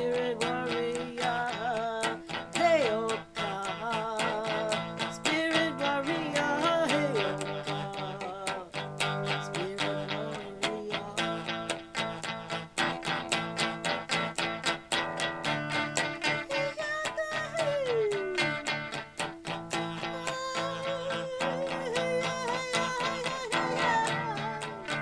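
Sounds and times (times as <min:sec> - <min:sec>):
wordless singing: 0:00.0 - 0:11.9, 0:16.2 - 0:18.7, 0:19.8 - 0:25.0
electric guitar strumming: 0:00.0 - 0:25.0.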